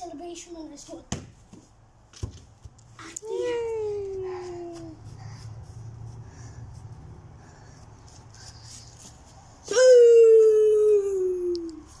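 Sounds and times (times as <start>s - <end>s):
boy shouting: 3.1s - 5.0s, 9.7s - 11.8s.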